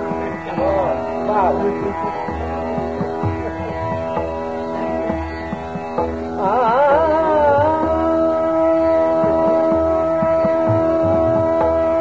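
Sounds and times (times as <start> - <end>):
drone accompaniment: 0.0 - 12.0
tabla strokes: 0.0 - 12.0.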